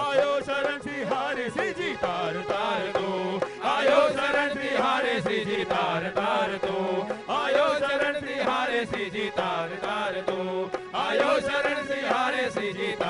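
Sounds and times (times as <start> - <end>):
instrumental accompaniment: 0.0 - 13.0
men singing devotional song: 0.0 - 13.0
rhythmic hand-clapping: 0.0 - 13.0.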